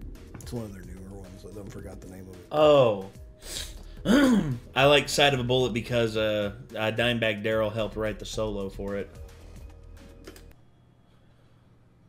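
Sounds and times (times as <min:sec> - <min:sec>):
faint low background sound: 0:00.0 - 0:12.0.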